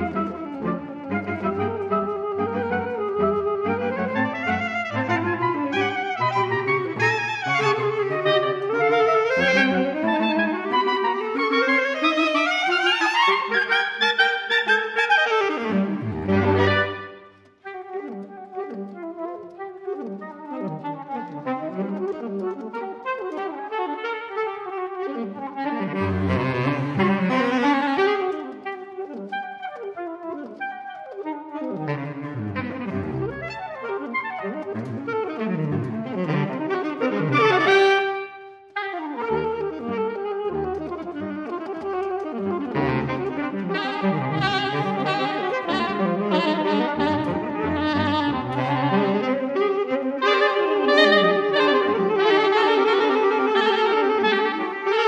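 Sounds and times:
saxophone quartet playing: 0:00.0 - 0:55.0.

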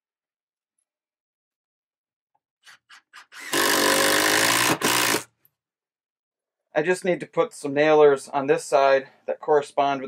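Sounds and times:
cordless drill driving screw: 0:02.6 - 0:05.3.

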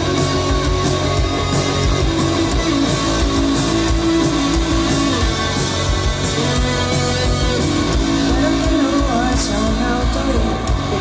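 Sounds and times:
electric guitars: 0:00.0 - 0:11.0
steady drum beat: 0:00.0 - 0:11.0.

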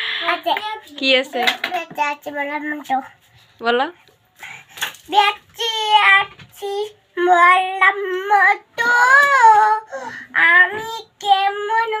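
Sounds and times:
child singing: 0:00.2 - 0:03.1, 0:05.1 - 0:12.0.

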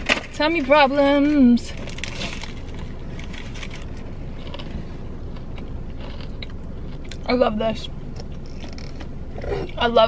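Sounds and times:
car cabin hum: 0:00.0 - 0:10.0
paper wrapper crinkling: 0:01.7 - 0:04.0
person biting and chewing: 0:01.8 - 0:07.3, 0:08.1 - 0:09.8.

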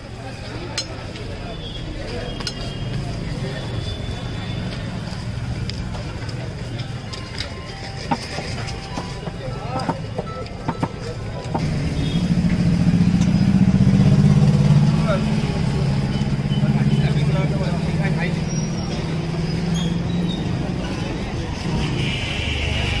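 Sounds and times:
street bustle: 0:00.0 - 0:23.0
voices: 0:00.0 - 0:23.0
vehicle engine running: 0:10.0 - 0:19.6.

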